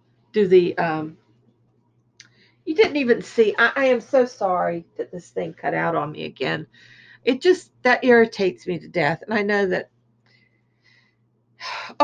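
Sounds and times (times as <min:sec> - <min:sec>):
woman speaking: 0:00.4 - 0:01.1, 0:02.7 - 0:09.8, 0:11.6 - 0:12.0.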